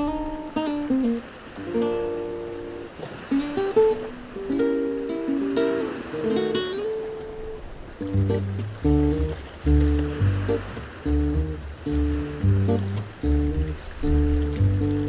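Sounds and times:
acoustic guitar: 0:00.0 - 0:15.0
plucked double bass: 0:08.0 - 0:15.0.

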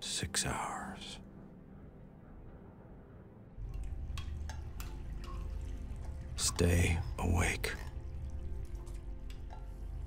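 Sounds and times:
person whispering: 0:00.0 - 0:01.2
low room hum: 0:00.0 - 0:10.0.

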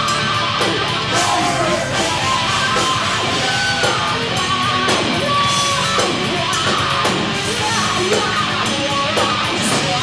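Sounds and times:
distorted electric guitar: 0:00.0 - 0:10.0
drum kit: 0:00.0 - 0:10.0.

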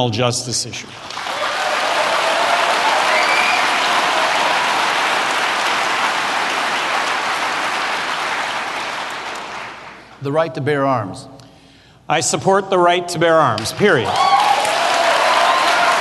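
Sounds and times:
audience cheering: 0:01.0 - 0:09.8, 0:13.9 - 0:16.0
large audience applauding: 0:01.0 - 0:10.2, 0:13.7 - 0:16.0.

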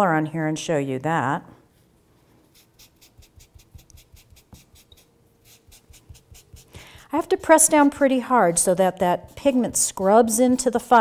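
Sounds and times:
pad scrubbing on paper: 0:02.4 - 0:11.0.

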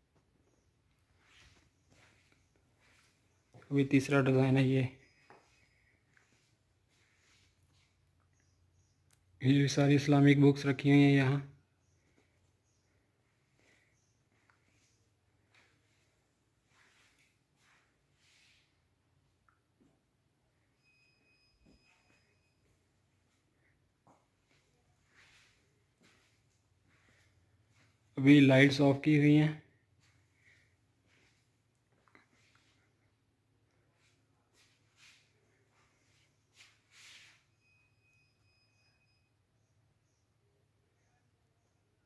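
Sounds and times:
faint high steady tone: 0:00.4 - 0:07.4, 0:19.4 - 0:30.6, 0:33.8 - 0:42.0.

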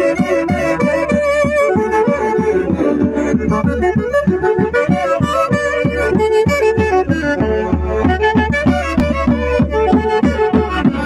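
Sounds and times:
saxophones and clarinets playing: 0:00.0 - 0:11.0.

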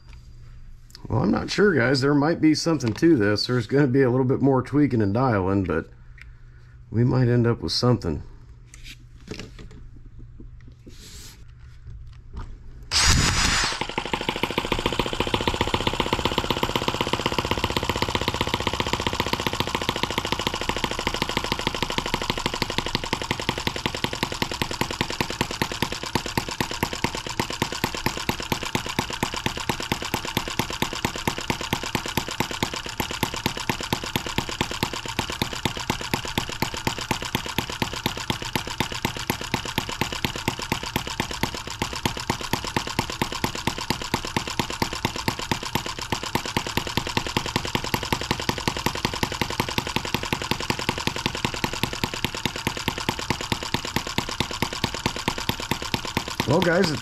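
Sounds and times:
sharp engine pops: 0:12.9 - 0:17.8
electric drill spinning: 0:12.9 - 0:57.0
model engine running: 0:12.9 - 0:57.0.

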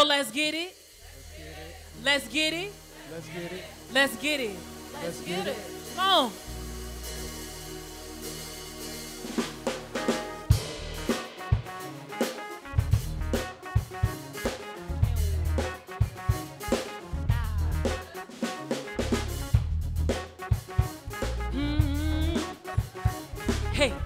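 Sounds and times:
drums in a steady groove: 0:00.0 - 0:24.0
live band playing: 0:00.0 - 0:24.0
keyboard: 0:02.0 - 0:24.0
electric bass: 0:06.4 - 0:08.0, 0:12.7 - 0:13.5, 0:14.8 - 0:15.7, 0:16.7 - 0:18.0, 0:19.0 - 0:20.3, 0:21.1 - 0:22.6, 0:23.3 - 0:24.0.

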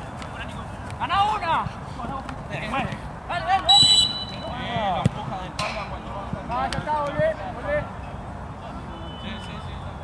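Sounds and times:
referee's whistle blast: 0:03.7 - 0:04.6.

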